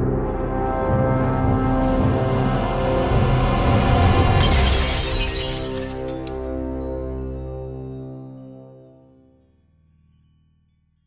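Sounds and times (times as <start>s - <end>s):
dark music with low notes: 0.0s - 10.7s
glass shattering: 4.4s - 6.8s.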